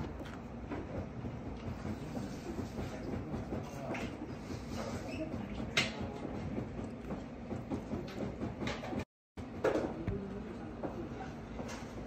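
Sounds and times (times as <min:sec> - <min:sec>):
restaurant room rumble: 0:00.0 - 0:12.0.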